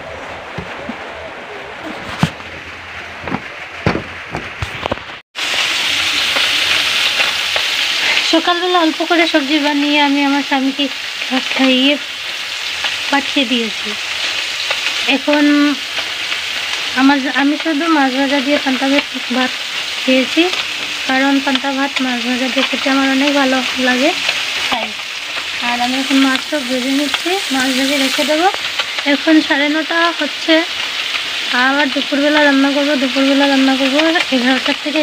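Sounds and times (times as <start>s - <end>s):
food sizzling in hot oil: 2.7s - 35.0s
sharp knocks: 3.2s - 4.7s.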